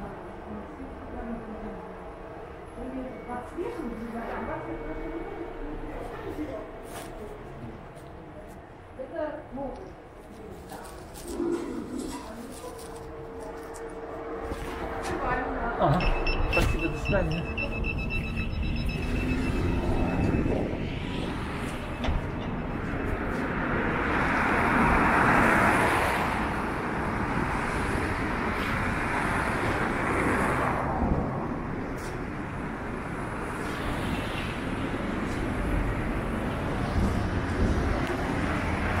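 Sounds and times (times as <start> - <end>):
city street traffic: 0.0 - 39.0.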